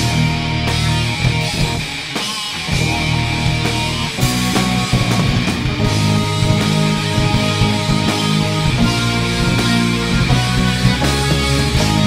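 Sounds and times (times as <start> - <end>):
distorted electric guitar: 0.0 - 12.0
rock band playing: 0.0 - 12.0.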